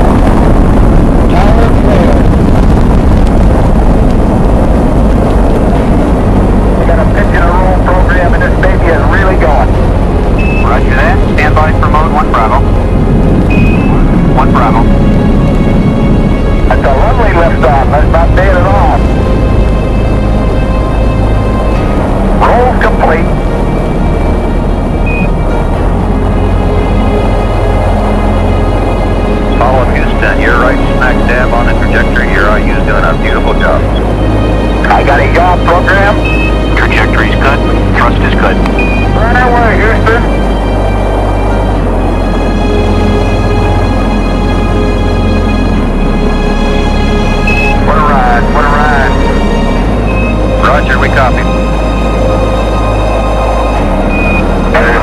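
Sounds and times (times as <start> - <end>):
rocket engines rumbling: 0.0 - 55.0.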